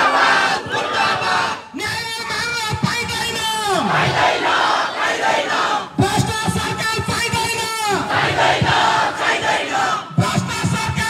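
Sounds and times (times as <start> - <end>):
large crowd shouting: 0.0 - 1.7, 3.8 - 6.0, 8.0 - 10.2.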